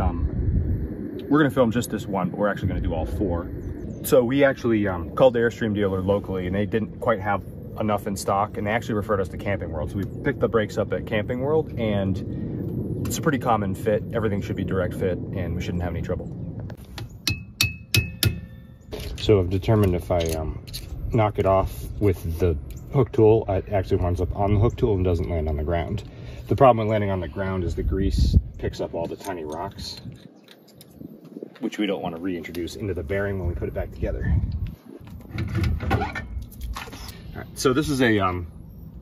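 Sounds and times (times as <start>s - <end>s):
hammer tapping metal tool: 17.0s - 18.6s.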